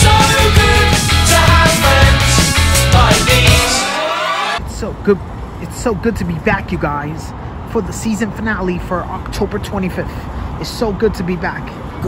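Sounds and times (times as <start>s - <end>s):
road traffic: 0.0s - 12.0s
man talking: 4.6s - 11.9s.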